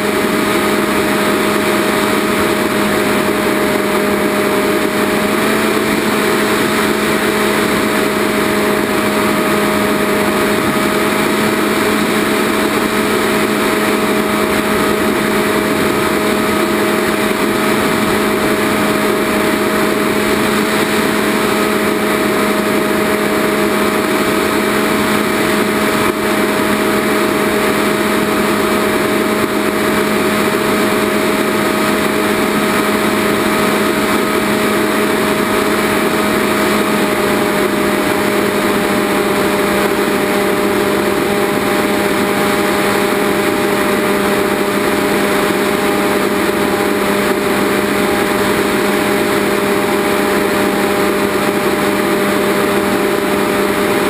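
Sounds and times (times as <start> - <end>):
model airplane motor and propeller: 0.0 - 54.0
rushing air: 0.0 - 54.0.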